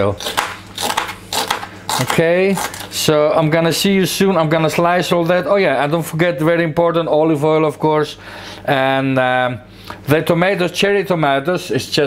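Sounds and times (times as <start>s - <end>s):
knife cutting onto plastic board: 0.2s - 2.9s.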